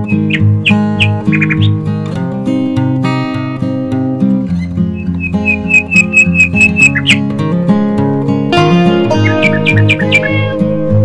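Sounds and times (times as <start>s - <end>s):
plucked guitar-like music: 0.0s - 11.0s.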